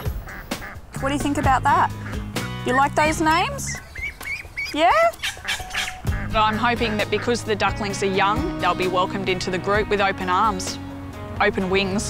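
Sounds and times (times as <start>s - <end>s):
ducklings peeping: 0.2s - 7.4s.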